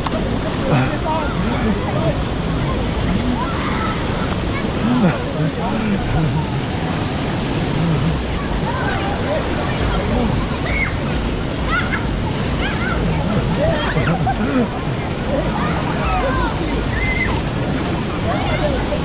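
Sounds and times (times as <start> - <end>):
children calling and chattering: 0.0 - 19.0
fountain spray: 0.0 - 19.0
splashing pool water: 0.0 - 19.0.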